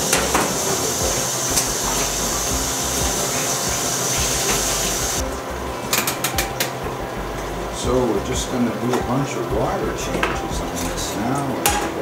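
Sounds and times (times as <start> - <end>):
tap water running into bucket: 0.0 - 5.4.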